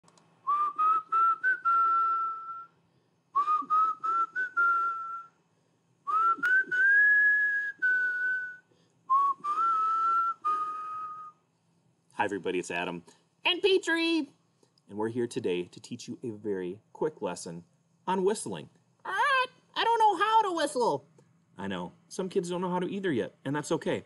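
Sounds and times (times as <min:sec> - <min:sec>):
man whistling a tune: 0:00.5 - 0:02.8, 0:03.4 - 0:05.4, 0:06.1 - 0:11.4.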